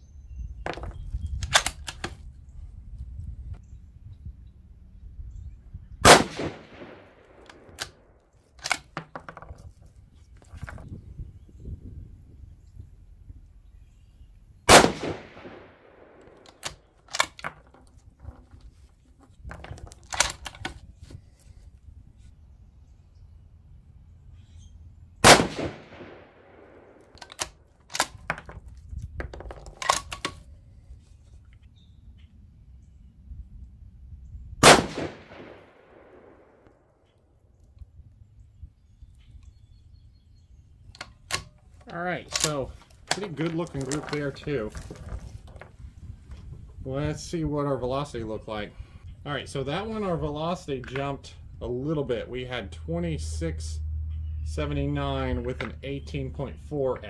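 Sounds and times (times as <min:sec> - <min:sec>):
rifle shots with echo: 0:06.0 - 0:08.1, 0:14.7 - 0:16.4, 0:25.2 - 0:27.2, 0:34.6 - 0:36.8
rifle bolt clicking: 0:27.0 - 0:28.2.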